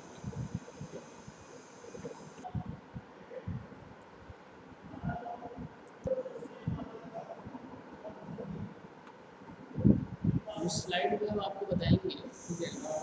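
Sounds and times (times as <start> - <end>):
rumbling and thudding on microphone: 0.1 - 1.1, 1.9 - 8.9, 9.5 - 12.0.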